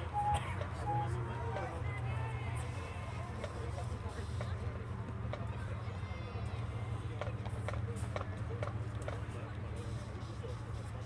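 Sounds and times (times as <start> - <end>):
stadium noise: 0.0 - 11.0.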